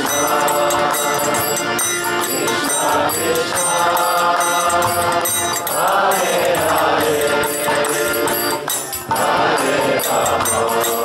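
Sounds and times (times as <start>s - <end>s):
group chanting in unison: 0.0s - 11.0s
harmonium drone: 0.0s - 11.0s
high jingling beat: 0.0s - 11.0s.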